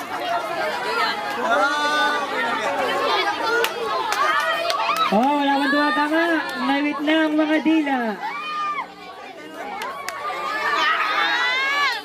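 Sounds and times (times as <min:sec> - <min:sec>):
teenagers talking over one another: 0:00.0 - 0:12.0.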